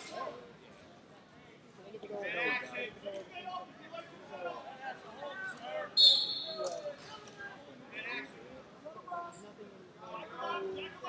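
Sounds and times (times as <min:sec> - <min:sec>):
background voices in a hall: 0:00.0 - 0:11.0.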